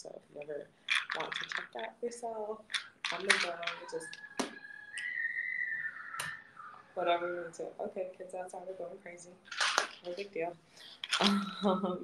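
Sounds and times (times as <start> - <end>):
long high whistle: 4.6 - 6.8.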